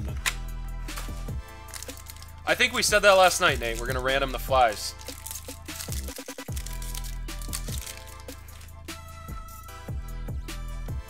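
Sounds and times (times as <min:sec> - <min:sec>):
background music with a beat: 0:00.0 - 0:11.0.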